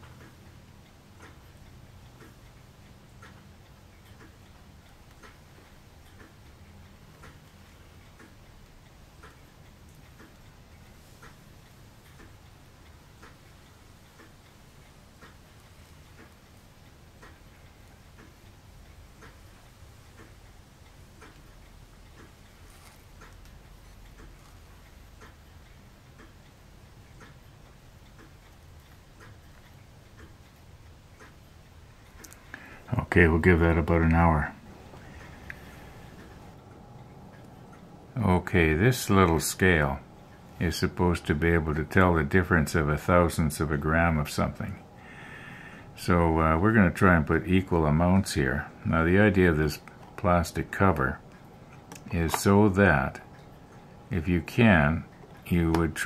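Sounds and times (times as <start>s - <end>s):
low room hum: 0.0s - 56.0s
steady ticking: 0.0s - 56.0s.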